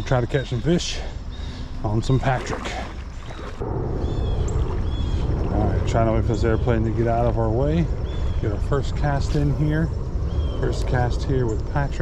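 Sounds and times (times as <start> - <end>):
airplane flying over: 2.4 - 12.0.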